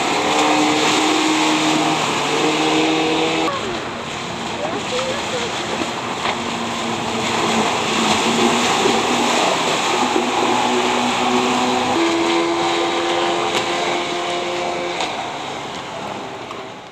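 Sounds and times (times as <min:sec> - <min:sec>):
outboard motor running: 0:00.0 - 0:16.9
rush of wind and water: 0:00.0 - 0:16.9.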